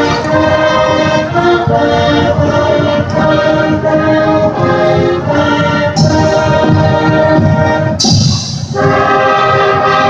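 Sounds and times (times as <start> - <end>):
marching band holding chords: 0.0 - 10.0.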